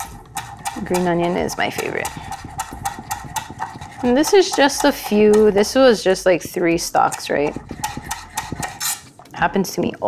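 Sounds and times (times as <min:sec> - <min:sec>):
knife tapping on wooden board: 0:00.2 - 0:08.8.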